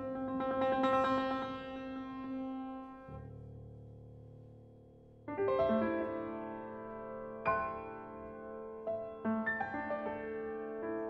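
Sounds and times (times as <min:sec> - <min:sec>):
solo piano: 0:00.0 - 0:11.0.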